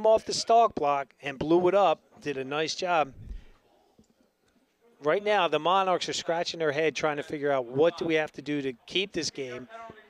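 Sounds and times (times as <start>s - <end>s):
short low rumble: 3.1s - 3.6s.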